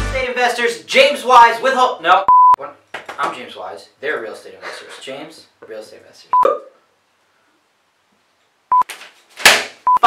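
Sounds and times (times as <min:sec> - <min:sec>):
short electronic beeps: 0:02.3 - 0:02.6, 0:06.4 - 0:06.7.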